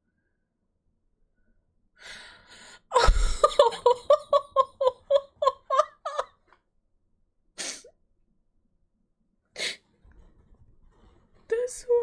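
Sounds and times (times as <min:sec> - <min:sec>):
woman laughing: 0:02.9 - 0:06.5.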